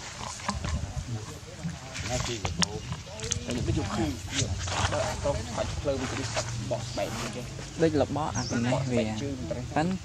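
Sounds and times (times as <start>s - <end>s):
indistinct voices: 0.2s - 10.0s.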